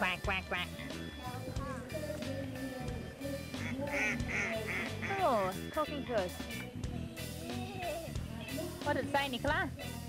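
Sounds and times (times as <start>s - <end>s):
background music: 0.0s - 10.0s
duck quacking: 3.2s - 5.8s.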